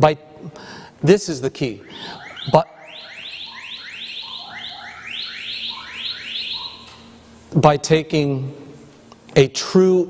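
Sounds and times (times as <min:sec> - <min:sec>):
faint steady hum: 0:00.0 - 0:10.0
rising electronic chirps: 0:01.8 - 0:07.2.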